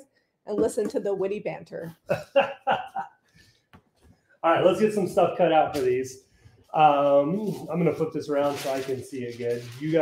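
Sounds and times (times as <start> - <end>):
woman laughing: 2.1 - 3.1.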